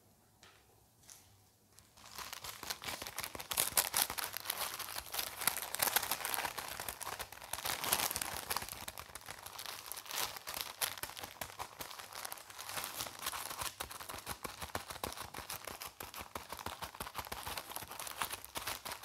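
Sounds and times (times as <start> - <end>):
crinkly wrapping crackling: 1.1 - 19.0.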